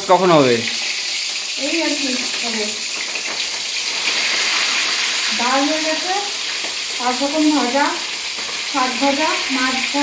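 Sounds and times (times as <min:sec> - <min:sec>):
hot oil sizzling: 0:00.0 - 0:10.0.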